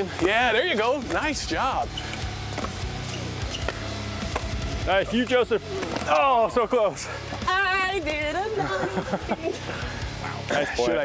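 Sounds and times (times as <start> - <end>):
low background music: 0.0 - 11.0.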